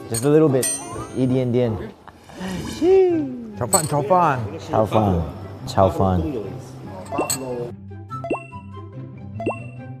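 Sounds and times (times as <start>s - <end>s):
light background music: 0.0s - 2.0s, 3.6s - 10.0s.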